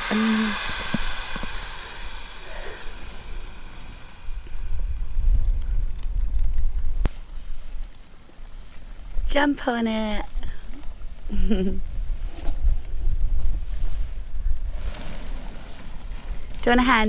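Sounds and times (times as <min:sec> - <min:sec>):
air hissing out of air beams: 0:00.0 - 0:05.9
low rumble: 0:00.0 - 0:07.1.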